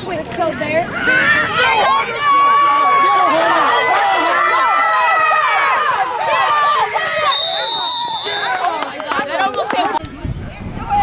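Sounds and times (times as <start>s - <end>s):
spectators shouting and cheering: 0.0s - 11.0s
whistle blast: 7.2s - 8.7s.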